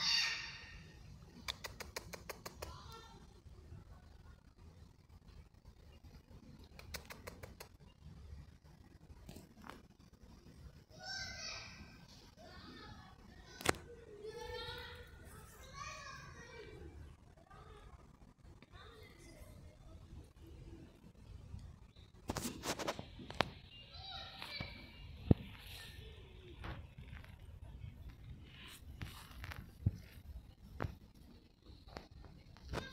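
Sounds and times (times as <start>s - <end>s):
sharp clicks: 1.4s - 2.9s, 6.6s - 7.8s.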